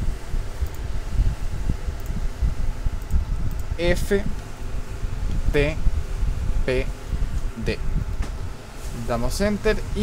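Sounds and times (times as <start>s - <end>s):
low buzzing hum: 0.0s - 10.0s.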